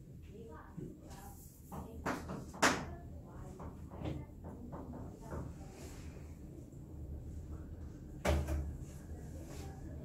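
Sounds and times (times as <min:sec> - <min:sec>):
faint room noise: 0:00.0 - 0:10.0.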